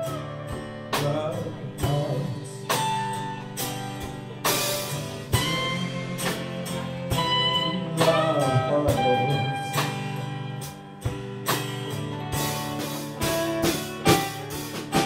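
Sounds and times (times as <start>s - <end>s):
bass: 0.0s - 15.0s
drum and cymbal hits: 0.0s - 15.0s
electric guitar: 0.0s - 15.0s.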